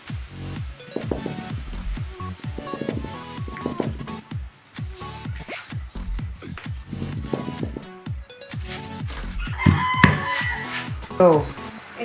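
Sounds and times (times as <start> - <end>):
music with steady beat: 0.0 - 11.7
rooster crowing: 9.4 - 11.0.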